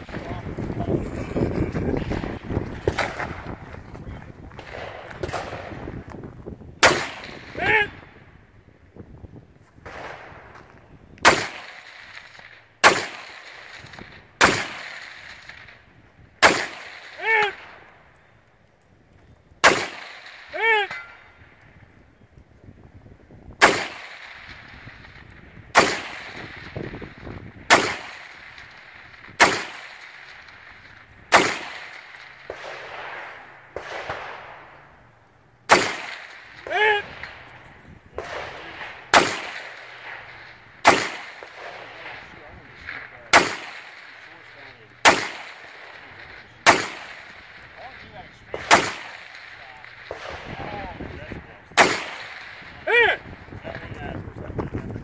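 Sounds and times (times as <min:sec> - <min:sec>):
rifle shots with echo: 0:01.9 - 0:06.1, 0:06.8 - 0:08.2, 0:09.8 - 0:18.3, 0:19.6 - 0:21.6, 0:23.6 - 0:54.3.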